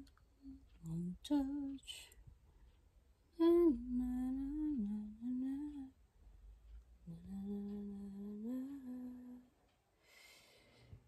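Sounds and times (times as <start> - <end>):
person humming a tune: 0.0 - 2.2, 3.4 - 6.0, 7.0 - 9.6.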